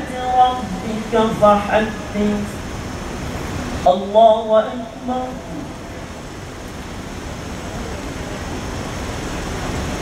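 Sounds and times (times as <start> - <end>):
low rumble with hiss: 0.0 - 10.0.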